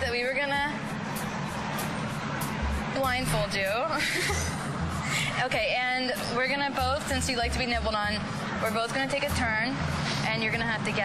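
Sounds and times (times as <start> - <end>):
faint music with bass thumps: 0.0 - 11.0
outdoor rumble and hiss: 0.0 - 11.0.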